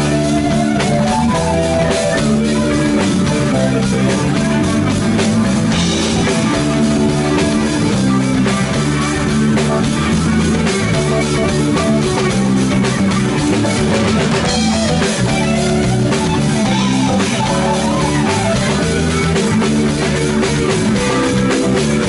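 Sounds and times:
bass guitar: 0.0 - 22.0
drum kit beat: 0.0 - 22.0
electric guitars: 0.0 - 22.0
keyboard: 0.0 - 22.0.

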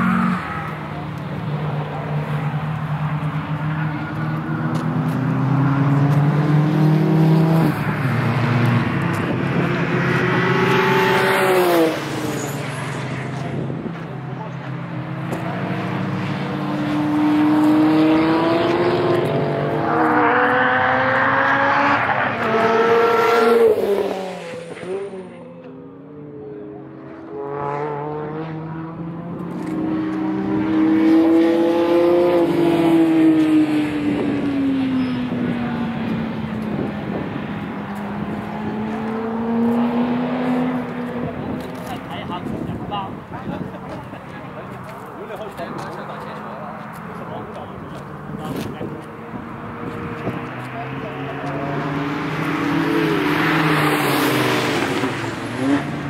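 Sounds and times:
race car engines passing: 0.0 - 56.0.

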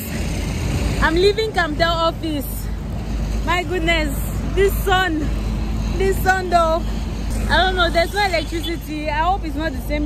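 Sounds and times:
low rumble of street noise: 0.0 - 10.0.

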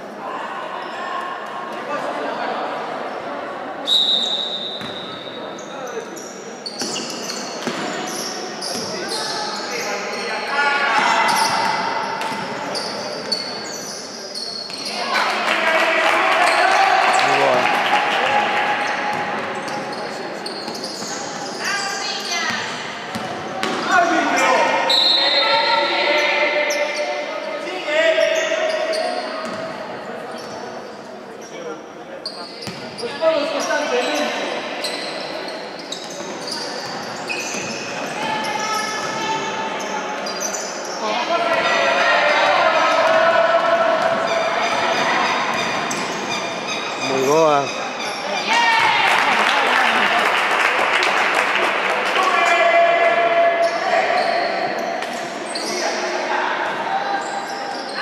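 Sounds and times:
basketball bouncing on wooden court: 22.5 - 23.8, 32.6 - 32.8.

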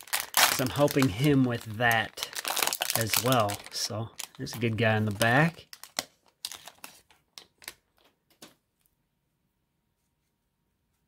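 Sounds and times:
wrapper crinkling and rustling: 0.0 - 8.1.

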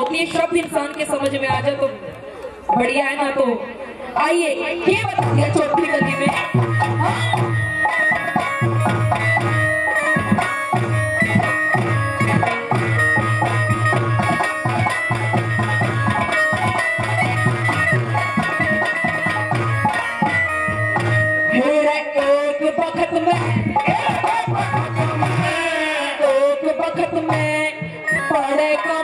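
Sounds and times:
repeating drum rhythm: 4.2 - 29.0
plucked string melody: 5.2 - 25.3.

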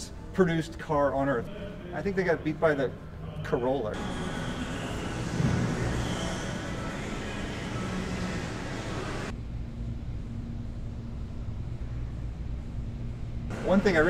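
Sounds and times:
steady low hum: 0.0 - 14.0.

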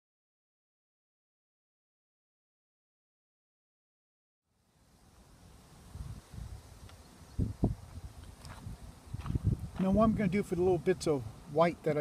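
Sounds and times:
wind buffeting microphone: 5.9 - 11.4.

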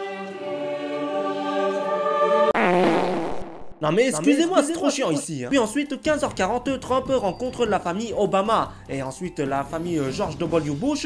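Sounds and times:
choir-like held note: 0.0 - 2.6
wobbling buzzing comic sound effect: 2.6 - 3.8.

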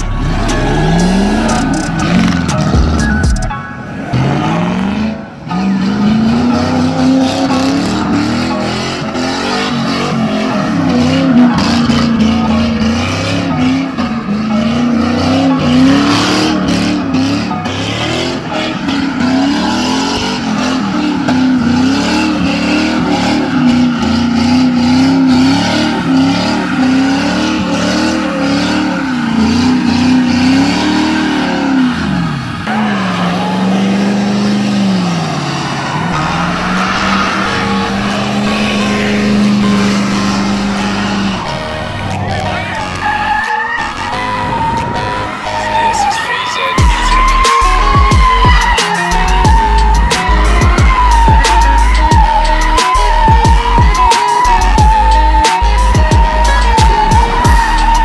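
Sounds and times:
car engine revving: 0.0 - 58.0
tires squealing: 0.0 - 58.0.

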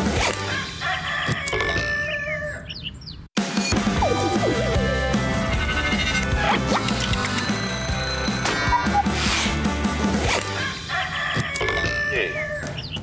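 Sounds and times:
jingle music with steady beat: 3.8 - 6.6, 7.2 - 8.5.

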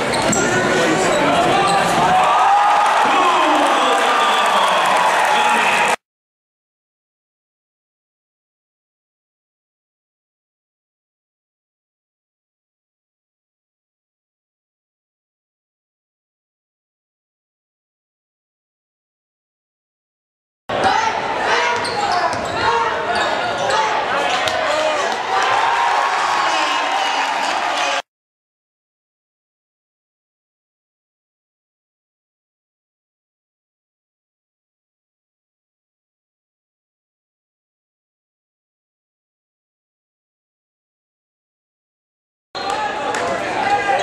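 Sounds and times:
crowd voices and shouting: 0.0 - 6.0, 20.7 - 28.1, 42.6 - 44.0.

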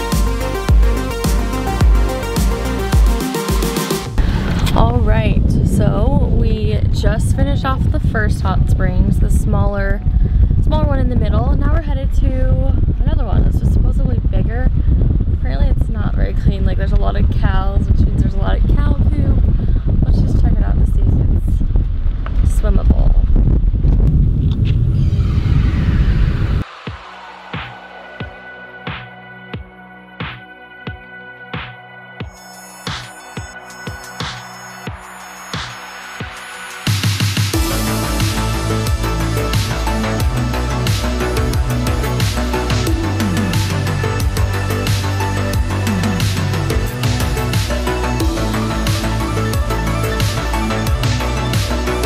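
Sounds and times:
electronic music: 0.0 - 6.2, 25.0 - 52.0
road and engine rumble: 4.2 - 8.7.

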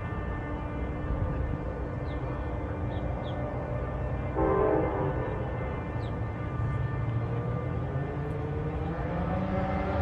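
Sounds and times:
soft background music: 0.0 - 10.0
multi-note horn blast: 4.2 - 7.2.

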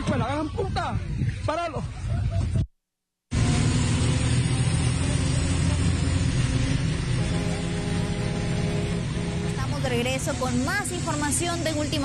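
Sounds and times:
bus engine rumble and road noise: 3.3 - 12.0
steady hum of even tones: 6.0 - 12.0.

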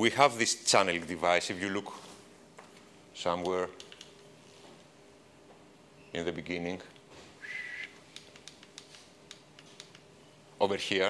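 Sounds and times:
high whistle-like tone: 7.4 - 7.9.

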